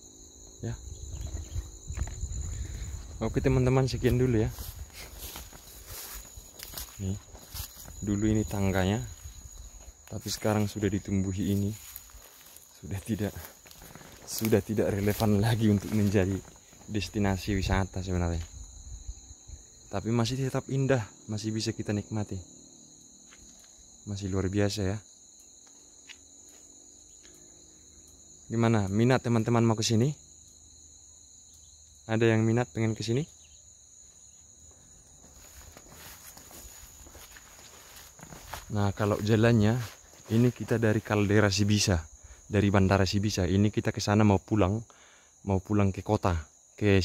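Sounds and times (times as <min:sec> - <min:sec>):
insects chirring: 0:00.0 - 0:47.0
footsteps through long grass: 0:00.9 - 0:19.1, 0:33.8 - 0:41.9.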